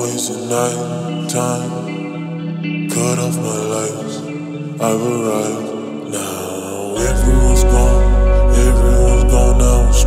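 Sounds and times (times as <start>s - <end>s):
slow music with sustained chords: 0.0s - 10.0s.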